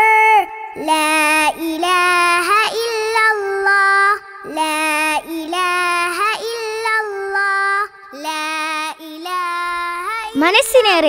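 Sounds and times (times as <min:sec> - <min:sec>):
child singing devotional song: 0:00.0 - 0:11.0.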